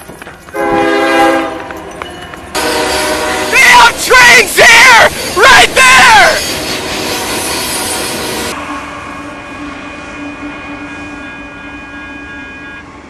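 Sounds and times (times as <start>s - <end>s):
train boxcars rolling past: 0.0s - 13.0s
steady multi-pitch tone: 8.5s - 13.0s.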